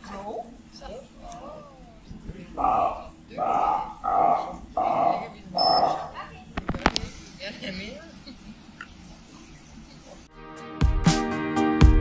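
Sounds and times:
seals growling: 2.6s - 6.2s.

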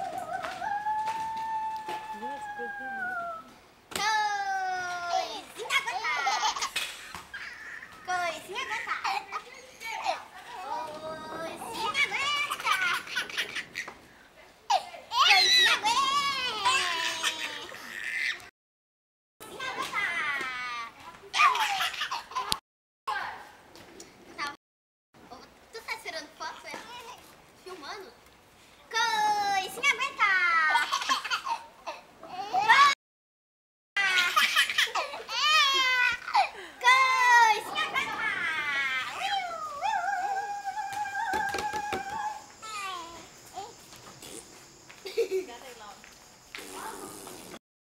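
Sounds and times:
baby squealing and giggling: 6.1s - 9.2s
baby crying and squealing: 38.0s - 43.2s.

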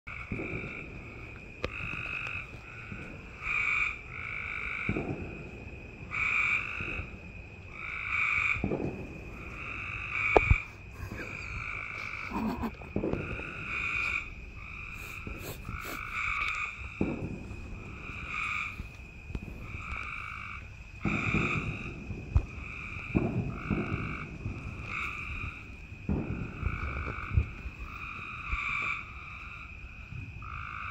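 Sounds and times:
treefrog trilling: 9.6s - 17.0s.

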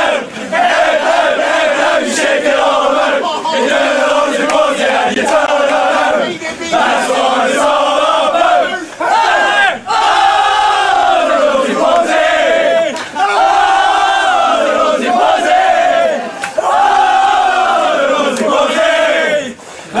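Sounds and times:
men chanting in unison: 0.0s - 20.0s.

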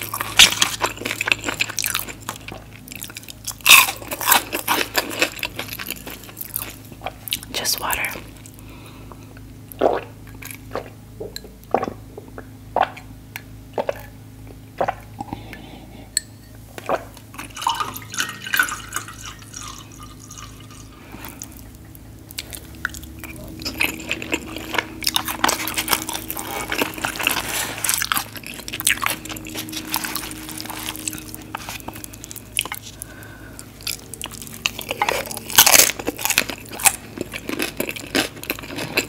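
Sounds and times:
crunching and chewing fried food: 0.0s - 13.1s, 16.8s - 39.0s.

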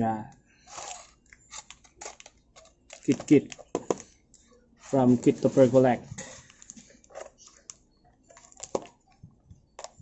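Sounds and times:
taped parcel crinkling: 0.7s - 4.1s.

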